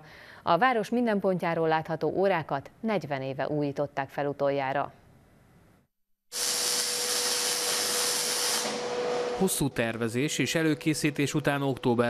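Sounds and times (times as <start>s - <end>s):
paint spray gun hissing: 6.3s - 9.4s.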